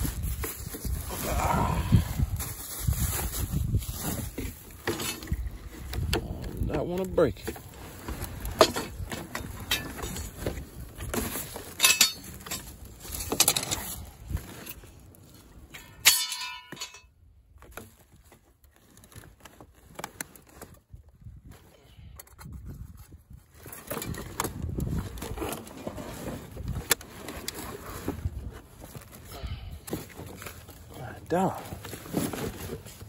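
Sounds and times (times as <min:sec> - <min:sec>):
metal clang: 0:15.8 - 0:17.1.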